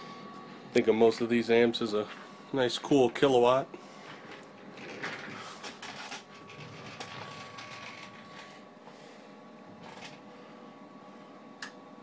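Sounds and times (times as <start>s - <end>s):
cooling fan hiss: 0.0s - 12.0s.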